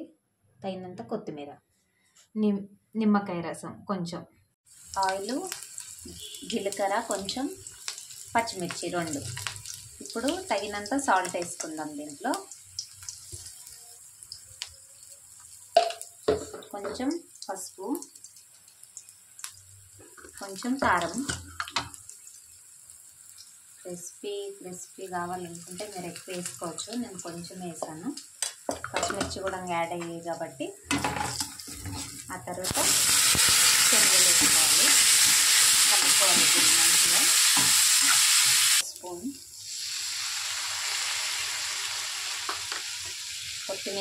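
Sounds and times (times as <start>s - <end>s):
oil sizzling: 4.7s - 44.0s
ladle stirring in a pan: 31.1s - 32.3s.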